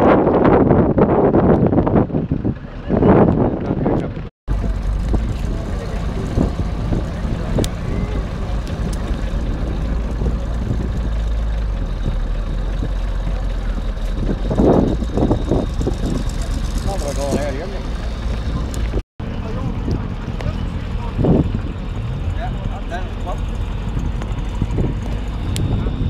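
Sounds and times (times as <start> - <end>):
people talking: 2.6 - 11.0, 13.2 - 23.6
car engine idling: 4.5 - 26.0.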